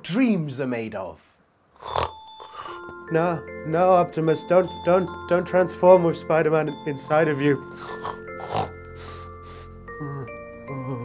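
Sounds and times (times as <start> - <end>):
man snoring: 1.8 - 2.8, 7.8 - 11.0
soft background music: 1.8 - 11.0.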